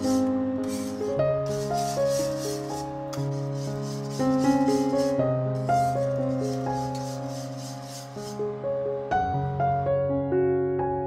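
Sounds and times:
whisk swishing in metal pan: 0.0 - 8.4
soft instrumental music: 0.0 - 11.0.

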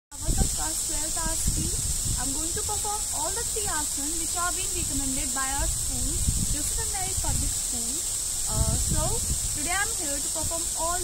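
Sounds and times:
high-pitched hiss: 0.1 - 11.0
girl speaking: 0.4 - 11.0.

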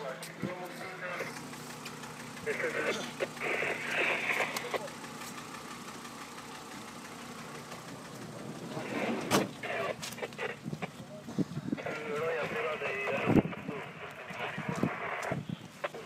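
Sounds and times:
car engine idling: 0.0 - 16.0
people talking and calling out: 0.0 - 16.0.

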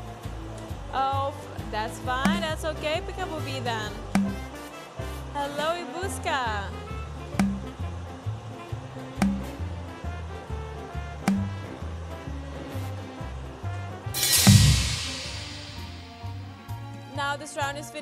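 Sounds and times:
whoosh with low thud: 14.2 - 16.5.

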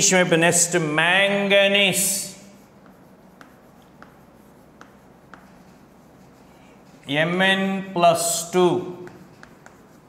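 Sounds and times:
chalk writing on chalkboard: 0.5 - 10.0.

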